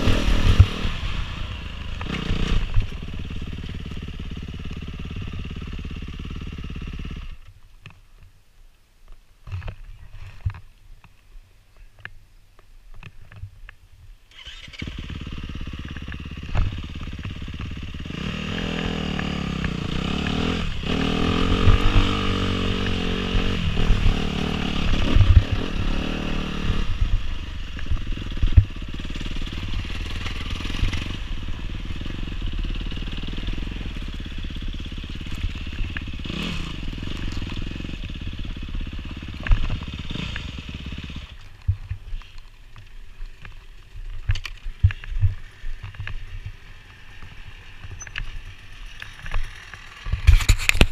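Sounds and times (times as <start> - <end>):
dirt bike engine revving: 0.0 - 7.4, 14.3 - 41.4.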